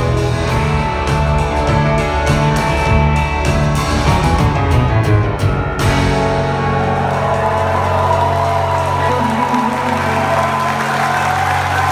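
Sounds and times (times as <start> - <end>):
audience applauding and cheering: 6.3 - 11.9.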